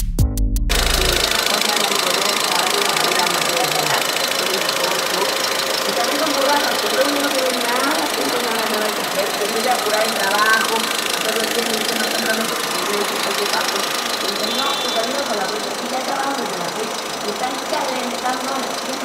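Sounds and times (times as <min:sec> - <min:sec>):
electronic music: 0:00.0 - 0:04.5
car engine idling: 0:00.7 - 0:19.0
voices talking: 0:00.7 - 0:19.0.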